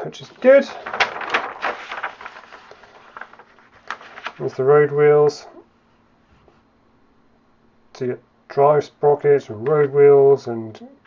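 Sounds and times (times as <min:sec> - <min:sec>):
paper rustling: 0:00.0 - 0:05.2.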